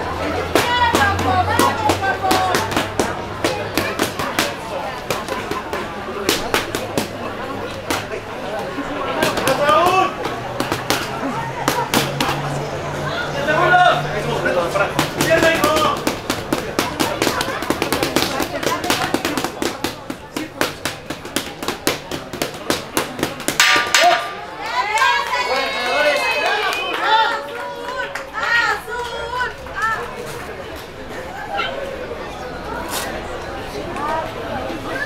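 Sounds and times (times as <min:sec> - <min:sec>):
children's voices chattering: 0:00.0 - 0:35.0
boxing gloves hitting focus mitts: 0:15.0 - 0:24.2.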